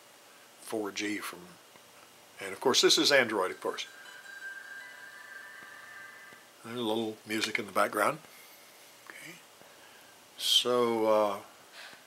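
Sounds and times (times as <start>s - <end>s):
phone startup tones: 3.2s - 6.6s.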